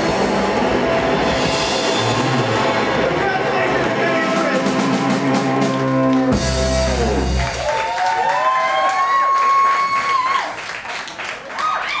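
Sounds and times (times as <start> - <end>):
live rock song: 0.0 - 7.7
audience applauding and cheering: 0.0 - 12.0
long held whoop: 7.6 - 10.6.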